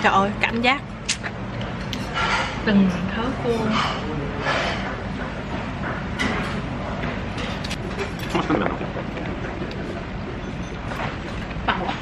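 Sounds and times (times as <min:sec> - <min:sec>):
steady low hum: 0:00.0 - 0:12.0
tableware clatter: 0:01.7 - 0:12.0.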